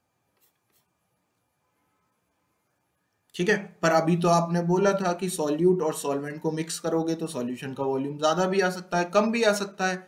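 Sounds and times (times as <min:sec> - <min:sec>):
stylus scratching on tablet: 0:00.3 - 0:01.2.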